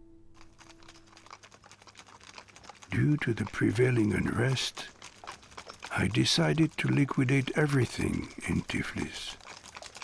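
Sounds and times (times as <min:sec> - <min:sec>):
hooves clattering on cobblestones: 0:00.3 - 0:10.0.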